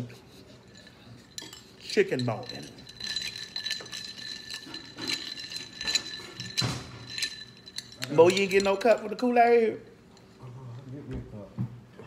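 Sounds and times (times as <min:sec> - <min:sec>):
ice cubes clinking in a glass: 0:00.8 - 0:09.6.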